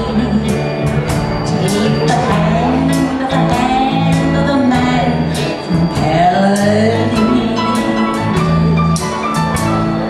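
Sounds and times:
woman singing into microphone: 0.0s - 0.8s, 1.4s - 8.4s
backing music: 0.0s - 10.0s
bass notes: 0.0s - 10.0s.

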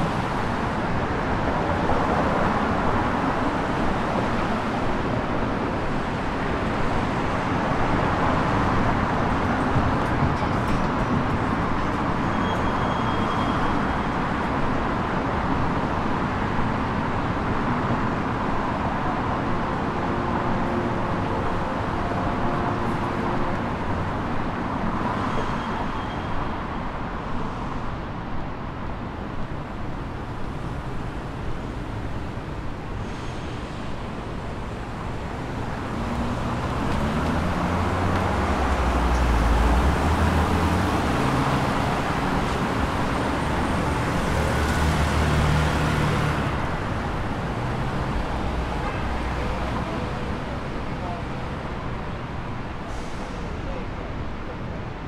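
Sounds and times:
passing cars: 0.0s - 55.0s.

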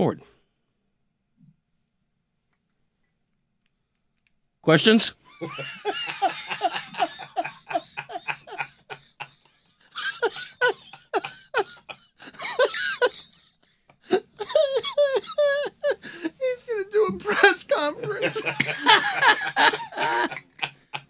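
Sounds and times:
men laughing: 5.3s - 13.3s, 14.0s - 21.0s.

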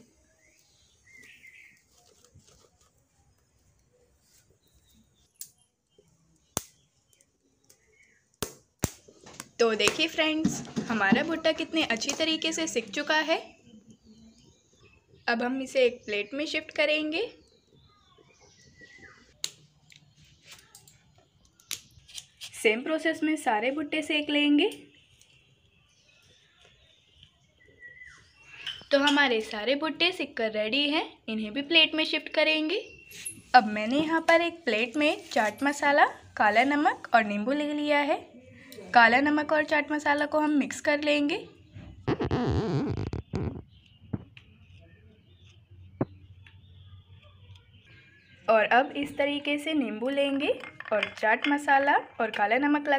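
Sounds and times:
faint bird chirps: 0.0s - 8.4s, 13.4s - 15.3s, 17.3s - 22.4s, 24.7s - 29.0s, 41.5s - 49.2s.

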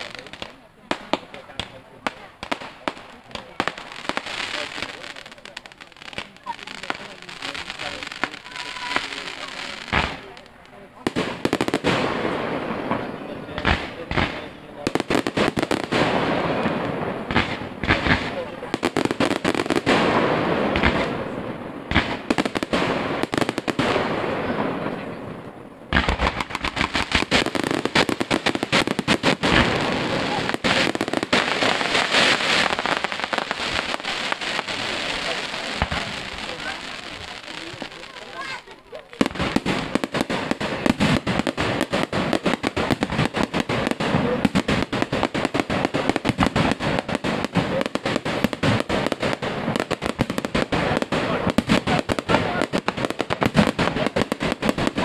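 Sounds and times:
firework crackling: 0.0s - 55.0s
firework shells bursting: 25.9s - 38.4s.

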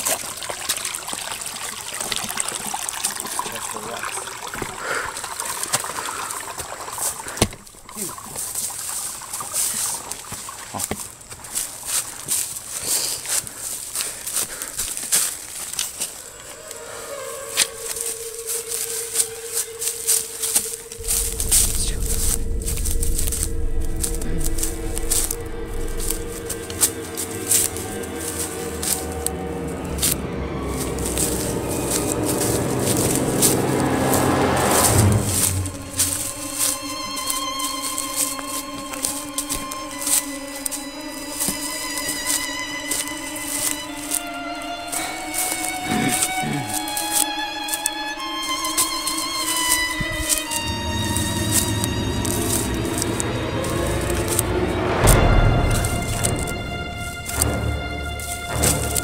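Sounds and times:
crackling and rustling: 6.7s - 59.0s
horror film score: 11.5s - 59.0s
deep drone: 16.2s - 59.0s.

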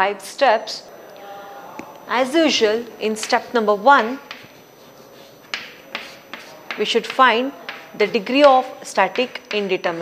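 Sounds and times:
chalk scratching on chalkboard: 3.2s - 10.0s
chalk tapping on chalkboard: 3.2s - 10.0s.

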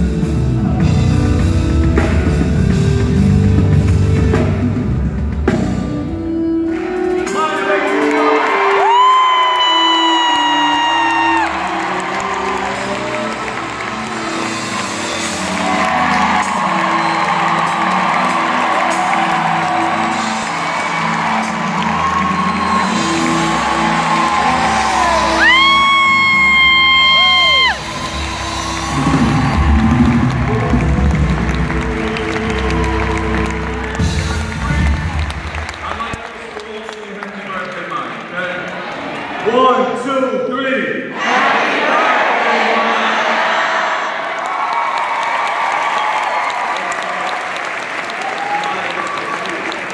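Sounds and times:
keyboard and bass chords: 0.0s - 8.8s, 11.0s - 36.2s
audience whooping and shouting: 6.8s - 36.2s, 43.1s - 49.9s.

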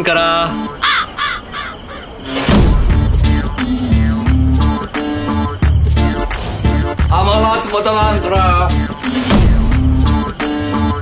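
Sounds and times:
crow cawing: 0.7s - 2.2s.

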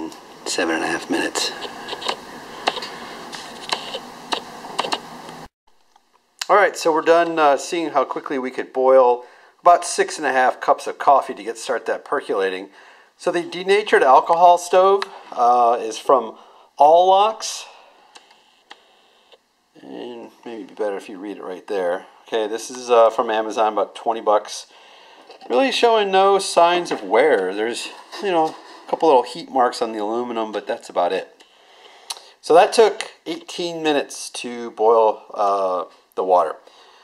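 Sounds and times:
man talking: 0.0s - 1.7s, 6.4s - 17.8s, 19.8s - 24.7s, 25.4s - 31.4s, 32.1s - 36.6s
steady fire hiss: 0.0s - 5.5s.

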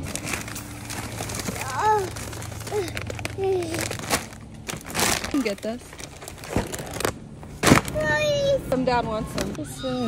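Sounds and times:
packaging crinkling: 0.0s - 8.0s.

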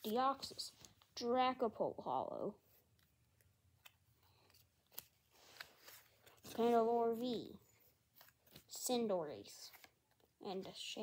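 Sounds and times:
trading cards clicking and sliding: 3.3s - 6.8s.

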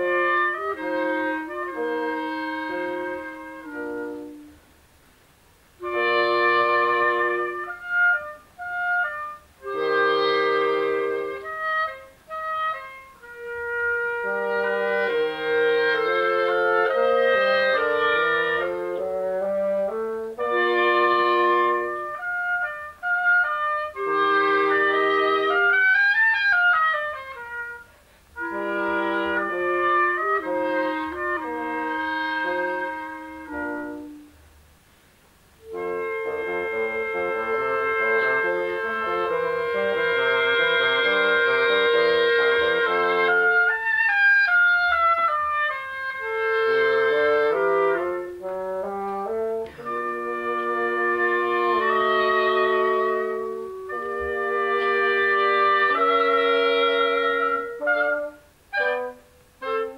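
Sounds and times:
wind instrument music: 0.0s - 4.9s, 5.6s - 34.8s, 35.5s - 59.9s.

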